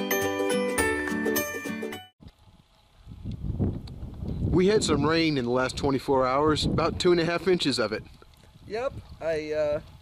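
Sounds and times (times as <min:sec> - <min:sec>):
wind rumble on microphone: 0:02.2 - 0:10.0.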